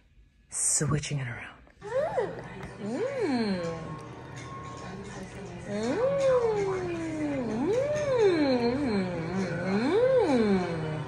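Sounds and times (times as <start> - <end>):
person humming mmm: 1.8 - 4.0, 7.3 - 11.0.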